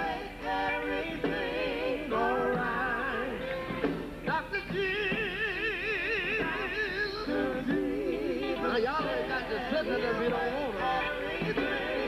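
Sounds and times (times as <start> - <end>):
men singing gospel: 0.0 - 12.0.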